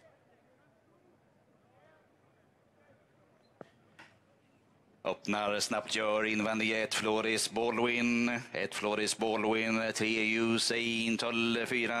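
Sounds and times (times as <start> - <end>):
faint distant voices: 0.0 - 5.0.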